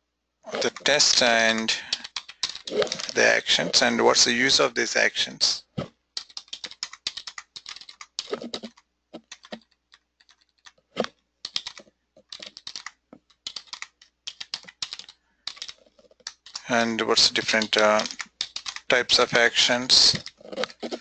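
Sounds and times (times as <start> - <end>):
computer keyboard typing: 0.5 - 3.3, 6.2 - 21.0.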